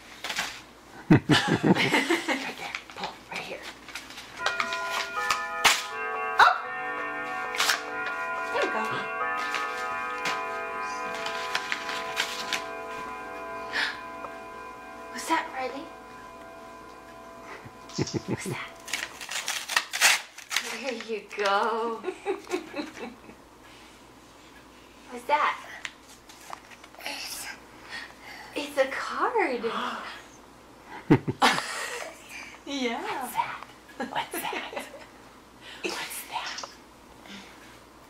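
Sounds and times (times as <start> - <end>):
tinny greeting card tune: 4.4 - 19.8
paper and card crinkling: 18.8 - 21.5.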